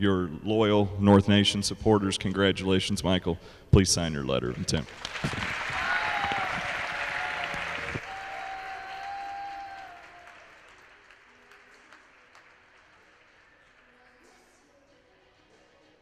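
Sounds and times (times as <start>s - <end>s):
audience applauding: 4.6s - 14.4s.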